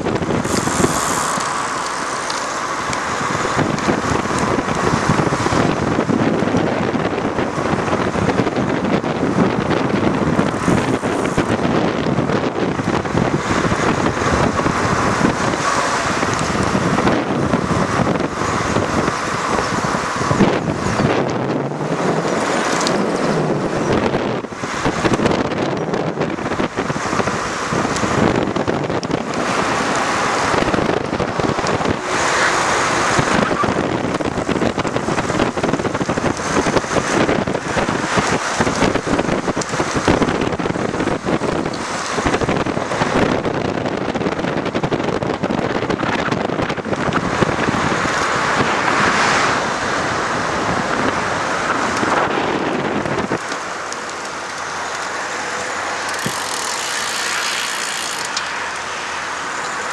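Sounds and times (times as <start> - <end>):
wind buffeting microphone: 0.0 - 58.4
road traffic: 0.0 - 59.9.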